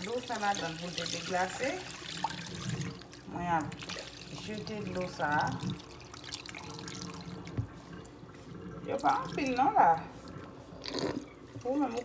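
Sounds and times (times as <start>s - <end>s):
water dripping and splashing: 0.0s - 12.0s.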